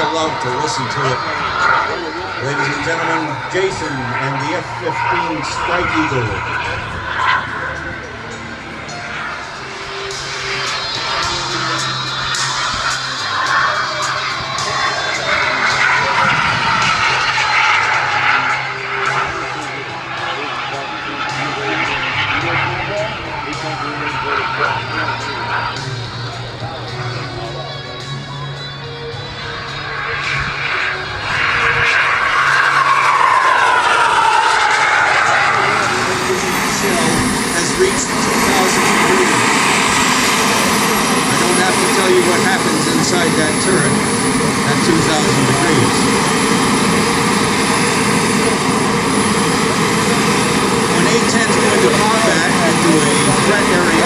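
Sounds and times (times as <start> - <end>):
background music: 0.0 - 47.7
model jet turbine whine: 0.0 - 54.0.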